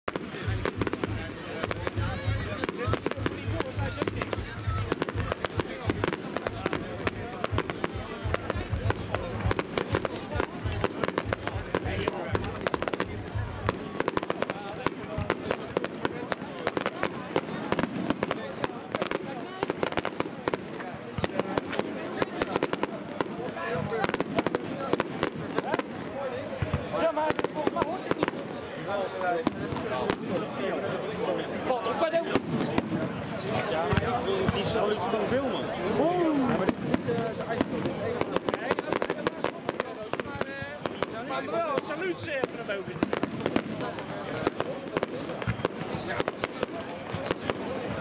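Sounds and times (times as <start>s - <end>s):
fireworks cracking and banging: 0.0s - 48.0s.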